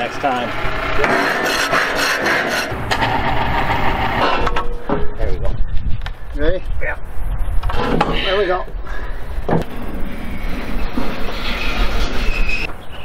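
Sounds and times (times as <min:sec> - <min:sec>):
scraper rasping across steel: 0:00.7 - 0:04.2.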